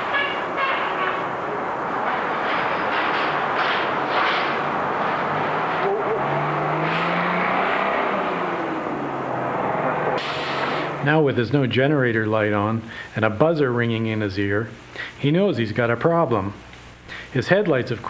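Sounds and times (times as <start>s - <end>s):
electric trolley bus passing: 0.0s - 11.1s
traffic: 0.0s - 11.3s.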